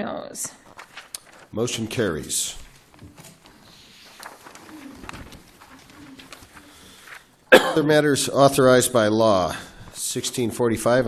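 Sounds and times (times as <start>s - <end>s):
paper handling: 0.6s - 7.5s.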